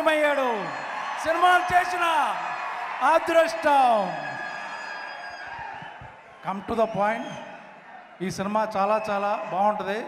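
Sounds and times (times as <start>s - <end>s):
man speaking over public address: 0.0s - 4.4s, 6.4s - 7.4s, 8.2s - 10.0s
large hall background noise: 0.0s - 10.0s.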